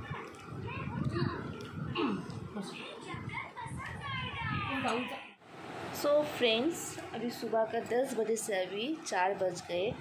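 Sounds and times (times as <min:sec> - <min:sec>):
children and adults talking: 0:00.0 - 0:05.4.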